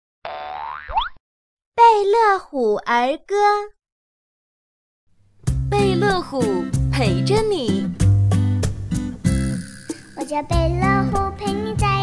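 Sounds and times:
cartoon boing sound effect: 0:00.3 - 0:01.2, 0:09.3 - 0:10.3.

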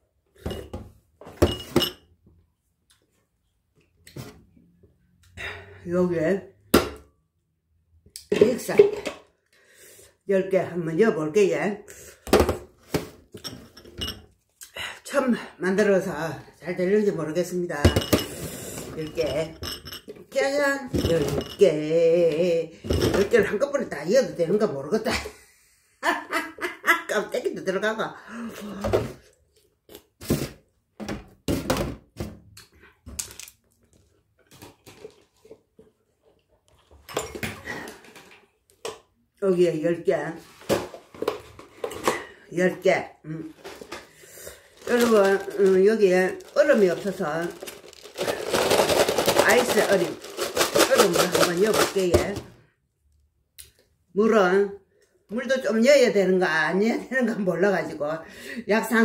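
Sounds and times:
knocks and thuds on metal tray: 0:31.0 - 0:32.4.

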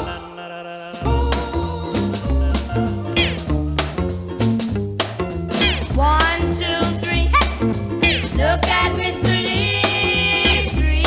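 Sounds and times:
doo-wop record playing: 0:00.0 - 0:11.0.

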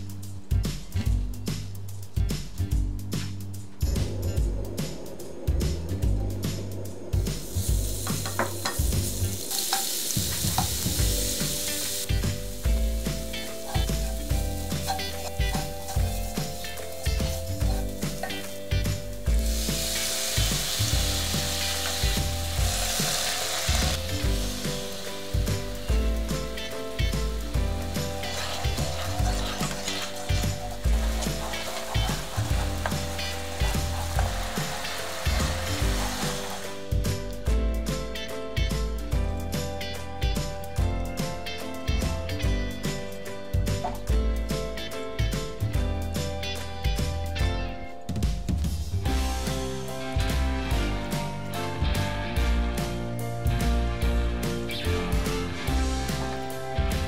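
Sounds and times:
background music: 0:00.0 - 0:57.0
garlic sizzling in oil: 0:07.2 - 0:37.3
wooden spoon scraping a pan: 0:28.0 - 0:36.7.

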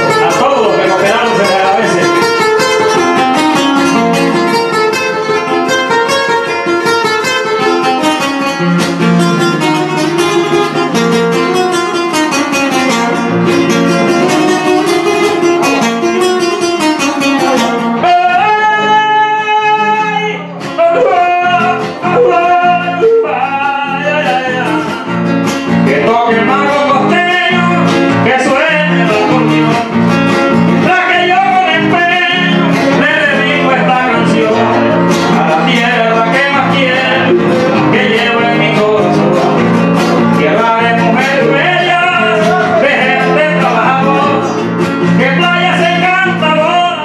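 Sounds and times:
man singing into a microphone: 0:00.0 - 0:08.3, 0:12.1 - 0:47.0
acoustic guitar plucked: 0:00.0 - 0:47.0.

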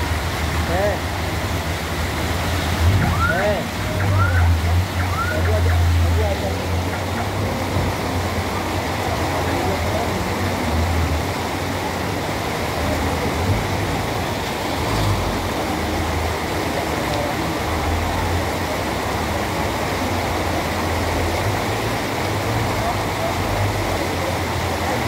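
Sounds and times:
floodwater rushing and splashing: 0:00.0 - 0:25.0
vehicle engines rumbling: 0:00.0 - 0:25.0.

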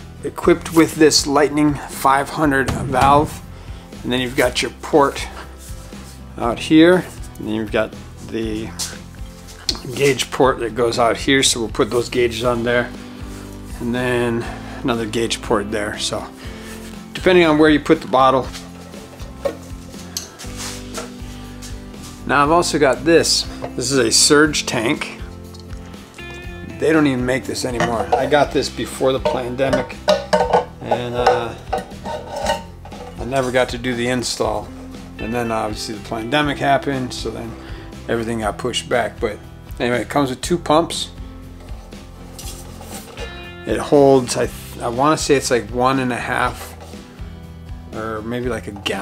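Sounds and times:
quiet background music: 0:00.0 - 0:49.0
rustling and scraping of a box: 0:41.7 - 0:43.3.

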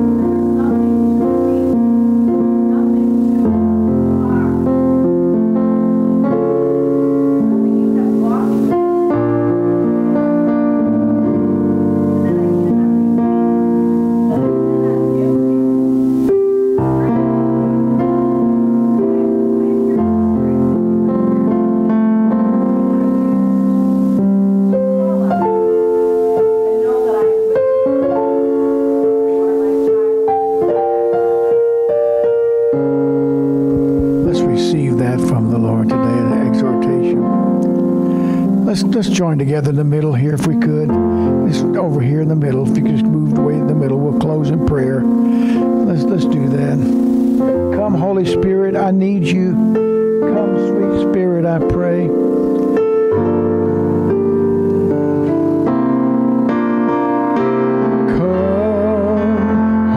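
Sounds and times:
electric keyboard playing chords: 0:00.0 - 0:59.9.

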